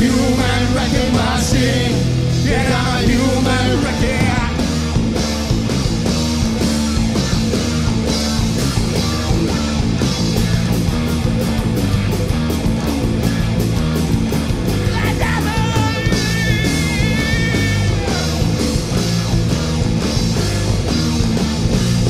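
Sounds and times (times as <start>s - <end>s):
bass guitar: 0.0s - 22.0s
drums: 0.0s - 22.0s
electric guitars: 0.0s - 22.0s.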